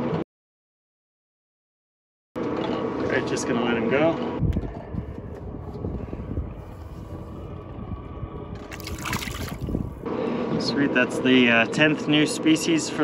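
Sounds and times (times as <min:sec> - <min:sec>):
wind buffeting microphone: 0:04.4 - 0:10.1.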